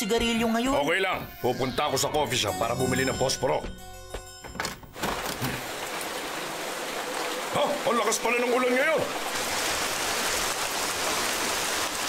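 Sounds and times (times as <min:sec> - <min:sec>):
heavy rain pouring: 0:05.0 - 0:12.0.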